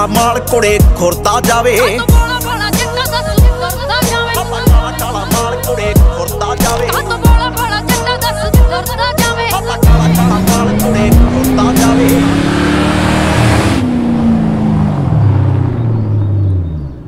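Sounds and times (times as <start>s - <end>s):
hip-hop beat drum hits: 9.8s - 12.4s
car engine revving: 9.8s - 17.0s.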